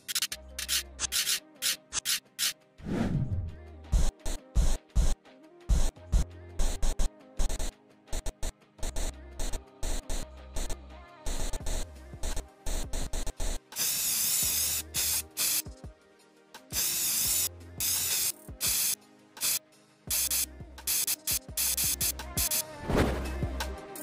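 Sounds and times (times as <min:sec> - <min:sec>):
spray paint can hissing: 0:00.0 - 0:02.6, 0:11.3 - 0:15.7, 0:16.7 - 0:22.7
background music: 0:00.0 - 0:24.0.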